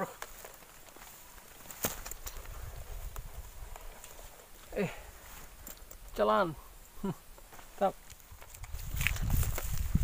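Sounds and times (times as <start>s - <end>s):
camera handling rumble and knocks: 8.3s - 10.0s.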